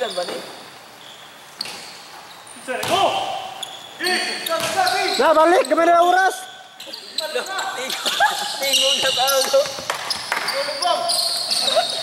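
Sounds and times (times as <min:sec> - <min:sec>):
sneakers squeaking: 0:00.0 - 0:12.0
basketball bouncing: 0:04.6 - 0:04.9.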